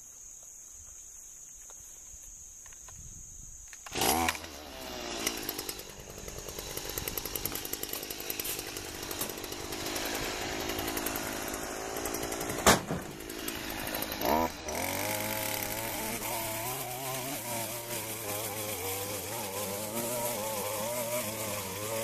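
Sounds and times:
string trimmer engine running: 0:03.8 - 0:22.0
sharp knock: 0:12.6 - 0:13.1.

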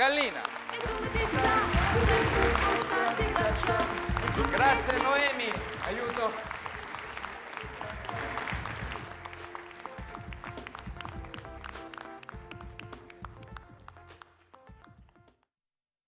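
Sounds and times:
audience applauding: 0:00.0 - 0:15.3.

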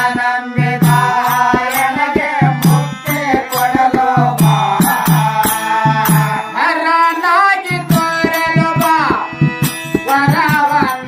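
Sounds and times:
harmonium melody: 0:00.0 - 0:11.0
tabla: 0:00.0 - 0:11.0.

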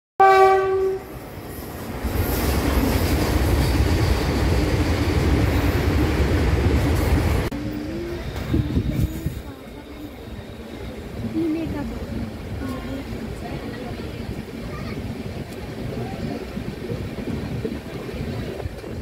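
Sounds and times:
train horn blast: 0:00.2 - 0:01.2
slow train rumble: 0:00.2 - 0:19.0
train wheels on rails: 0:00.4 - 0:19.0.

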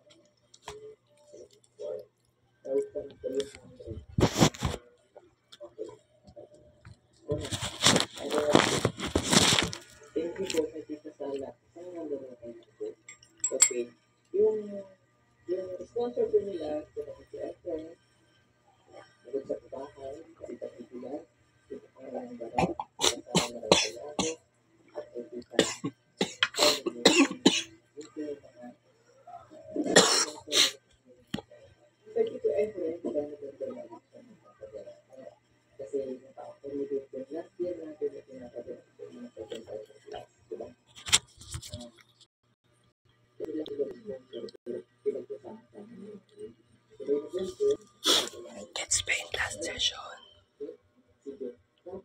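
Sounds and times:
person whispering: 0:02.6 - 0:04.8, 0:07.3 - 0:13.0, 0:43.4 - 0:52.0
man coughing: 0:25.6 - 0:27.7.

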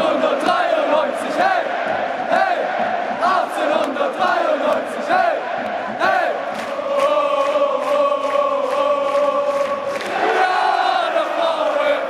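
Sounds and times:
stadium crowd chanting: 0:00.0 - 0:12.0.

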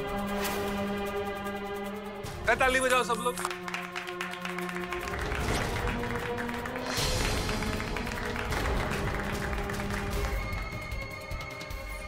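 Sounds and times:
background music: 0:00.0 - 0:12.0
group clapping: 0:02.6 - 0:11.8.

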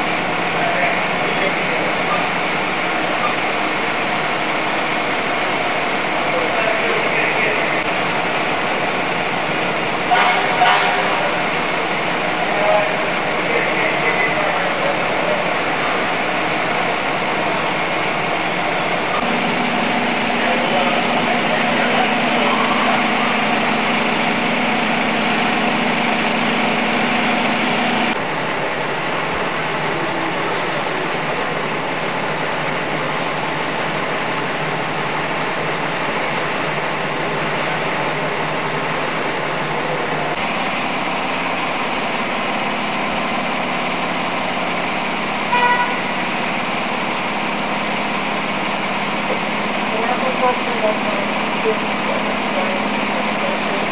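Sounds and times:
diesel engines idling: 0:00.0 - 0:53.9
street din: 0:00.0 - 0:53.9.

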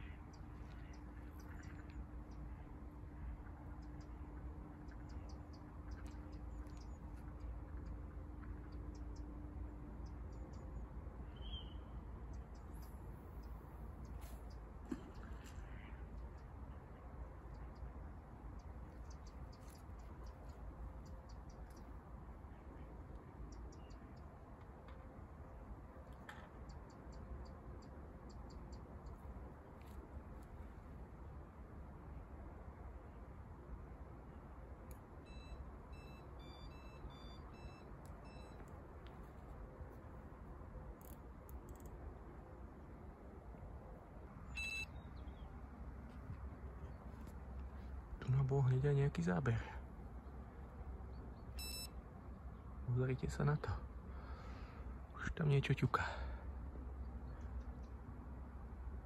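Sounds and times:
faint bird chirps: 0:00.0 - 0:25.0, 0:34.9 - 0:40.2, 0:44.2 - 0:58.0
faint steady hum: 0:00.0 - 0:59.0
low steady rumble: 0:00.0 - 0:59.0.

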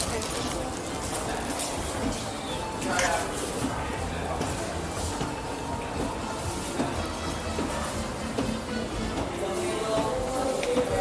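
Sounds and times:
busy mall hum: 0:00.0 - 0:11.0.

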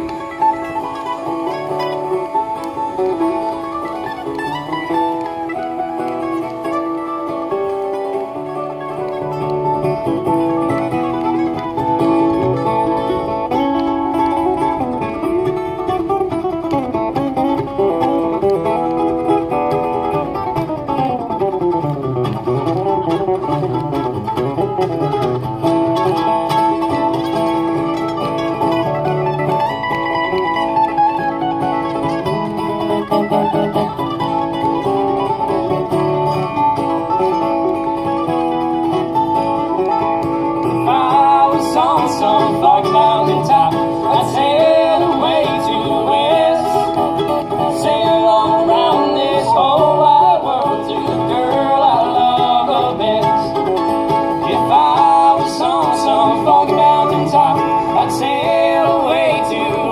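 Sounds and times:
acoustic guitar strumming: 0:00.0 - 0:59.9
mandolin: 0:00.0 - 0:59.9.

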